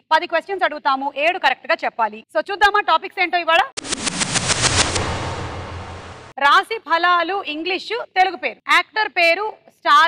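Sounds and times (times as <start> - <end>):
low rumble: 3.8 - 6.4.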